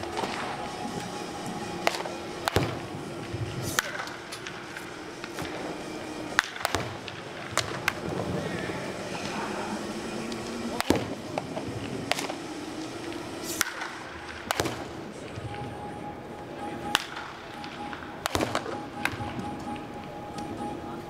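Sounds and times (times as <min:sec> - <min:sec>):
wooden bat cracking balls: 0:00.0 - 0:09.4, 0:10.2 - 0:15.5, 0:16.9 - 0:20.5
background music: 0:00.0 - 0:21.0
chatter: 0:00.0 - 0:21.0.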